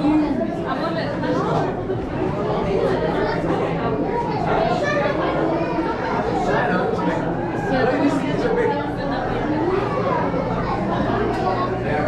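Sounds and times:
babble of many voices: 0.0 - 12.0.

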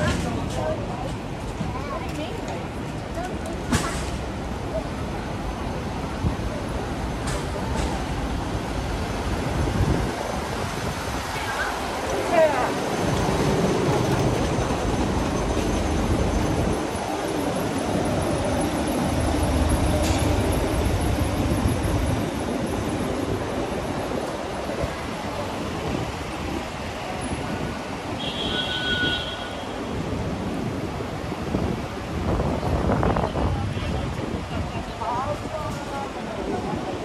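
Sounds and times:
city street traffic rumble: 0.0 - 37.0.

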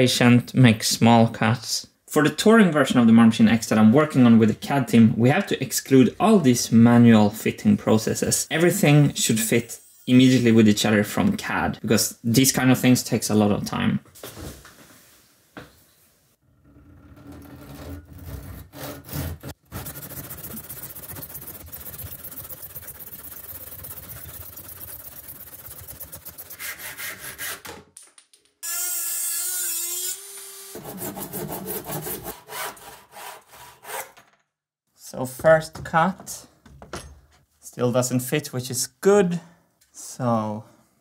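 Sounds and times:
handsaw rasping through wood: 17.4 - 27.6, 30.8 - 34.2.

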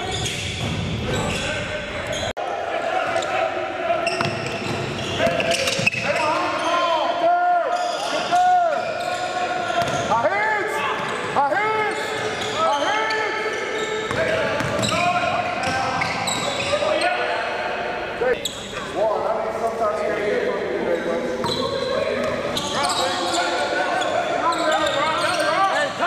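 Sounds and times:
sneakers squeaking: 0.0 - 2.4, 4.0 - 7.1, 7.7 - 19.0, 21.3 - 26.0
basketball bouncing: 9.8 - 10.0, 14.1 - 15.0.

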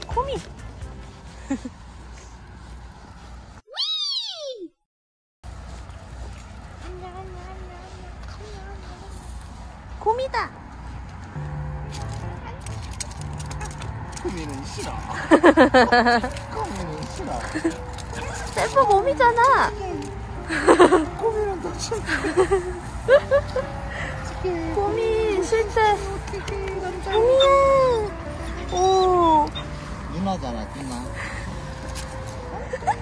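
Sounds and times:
dog whining and yipping: 3.7 - 4.6, 27.0 - 29.9
call rising and falling in pitch: 3.7 - 4.7.

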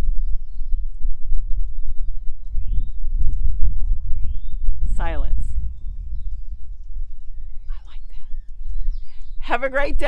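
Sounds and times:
faint bird chirps: 0.0 - 10.0
wind buffeting microphone: 0.0 - 10.0.

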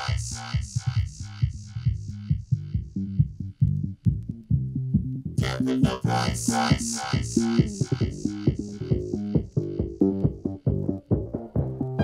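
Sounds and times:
breakbeat electronic dance music: 0.0 - 4.3, 5.4 - 12.0.

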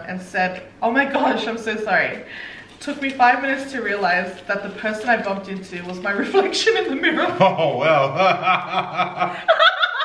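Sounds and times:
person laughing: 7.4 - 10.0.

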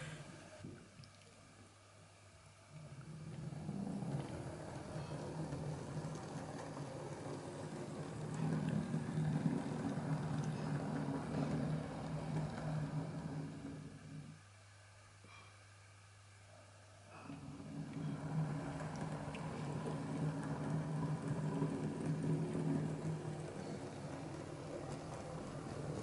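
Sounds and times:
wheels rolling on track: 2.8 - 14.4, 17.3 - 26.0
model train motor humming: 3.0 - 14.4, 17.4 - 26.0.

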